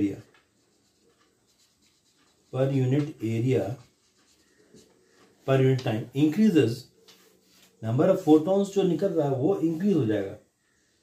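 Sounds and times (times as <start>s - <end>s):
marker pen scratching on paper: 0.0s - 5.5s
person speaking: 0.0s - 10.5s.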